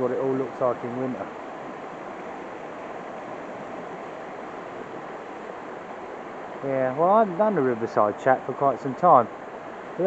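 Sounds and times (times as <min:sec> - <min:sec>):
river water rushing over rocks: 0:00.0 - 0:10.0.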